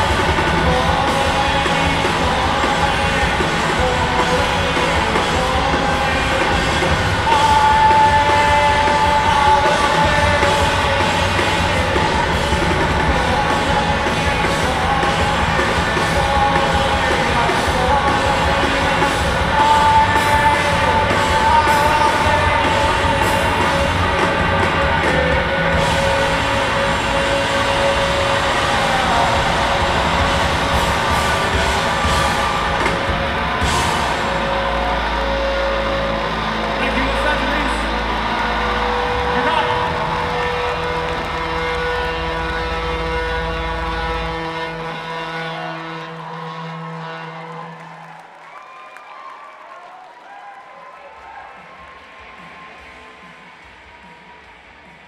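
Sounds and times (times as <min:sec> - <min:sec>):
guitar feedback: 0:00.0 - 0:48.0.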